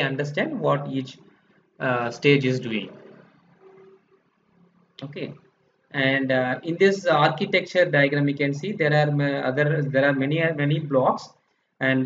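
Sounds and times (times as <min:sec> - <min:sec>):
faint hum: 0:00.0 - 0:11.2.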